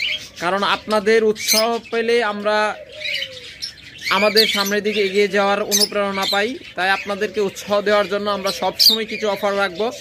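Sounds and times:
lovebirds chirping and squawking: 0.0s - 10.0s
man talking: 0.4s - 2.9s, 4.1s - 10.0s.

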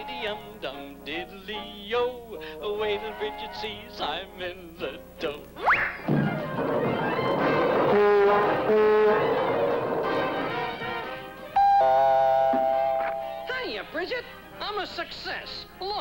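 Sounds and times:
cartoon orchestral music: 6.1s - 13.6s.

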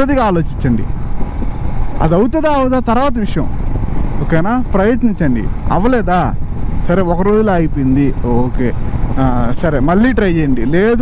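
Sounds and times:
man talking: 0.0s - 0.9s, 2.0s - 3.6s, 4.2s - 11.0s
motorcycle engine rumble: 0.0s - 11.0s
wind rumble: 0.0s - 11.0s.

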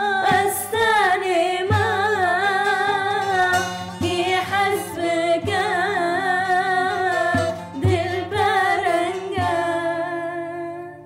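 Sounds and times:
saz strumming: 0.0s - 11.0s
two women singing together: 0.0s - 11.0s.

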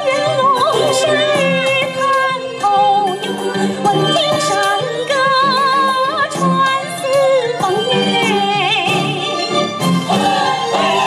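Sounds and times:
instrumental accompaniment: 0.0s - 11.0s
woman singing: 0.0s - 11.0s.

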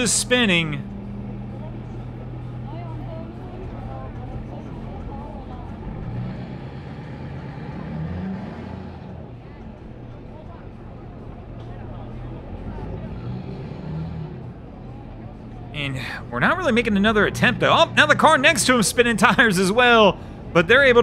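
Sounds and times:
truck engine revving: 0.0s - 21.0s.

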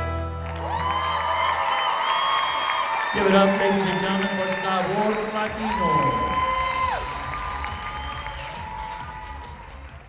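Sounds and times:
music playing: 0.0s - 1.7s, 3.1s - 10.0s
audience cheering: 0.2s - 10.0s.

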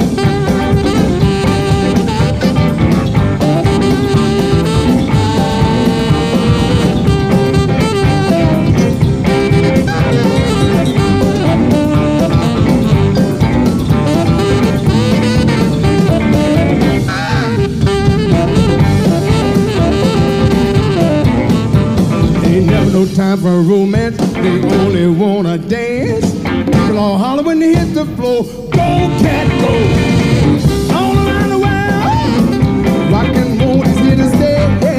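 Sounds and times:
saxophone lead: 0.0s - 23.4s, 24.2s - 27.4s, 28.6s - 34.9s
drums: 0.0s - 34.9s
rock and roll band playing: 0.0s - 34.9s.

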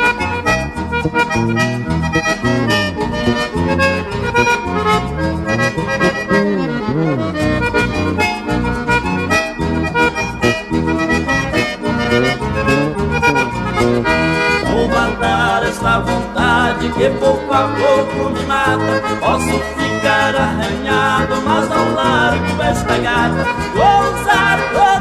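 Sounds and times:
accordion melody: 0.0s - 25.0s
bass: 0.0s - 25.0s
guitar: 0.0s - 25.0s.

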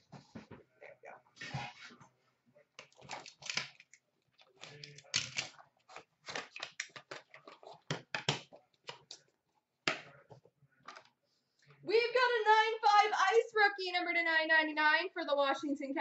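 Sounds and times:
plastic cases clacking in a bin: 4.6s - 5.6s.

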